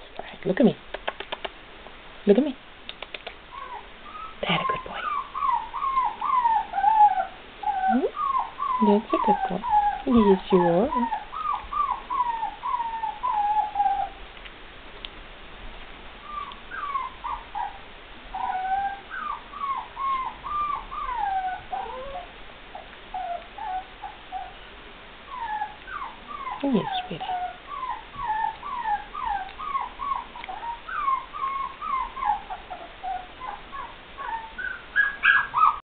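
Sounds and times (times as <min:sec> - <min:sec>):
puppy whimpering: 0:03.5 - 0:14.2, 0:16.2 - 0:24.6, 0:25.3 - 0:35.8.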